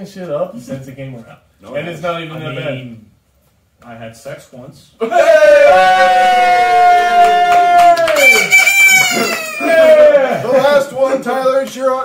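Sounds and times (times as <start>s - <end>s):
men hollering and whooping: 5.0s - 10.9s
hand claps: 7.2s - 10.0s, 11.6s - 12.0s
high falsetto yell: 8.1s - 10.2s.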